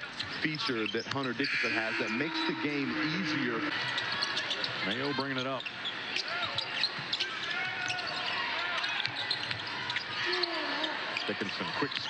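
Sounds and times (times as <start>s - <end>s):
sneakers squeaking on floor: 0.1s - 12.0s
crowd murmur: 1.5s - 5.5s.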